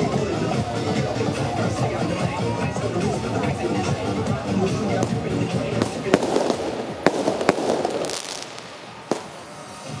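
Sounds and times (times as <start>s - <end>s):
firecracker bangs: 5.0s - 10.0s.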